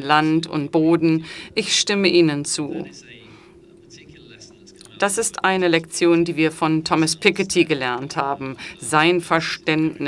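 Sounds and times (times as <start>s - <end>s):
steady low hum: 0.0s - 10.0s
faint man's voice talking: 2.6s - 5.4s.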